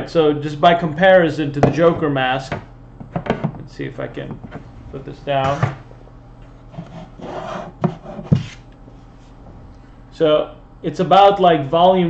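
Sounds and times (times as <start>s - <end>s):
sharp plastic knocks: 2.5s - 3.6s
plastic masks rubbing and scraping: 6.4s - 9.4s.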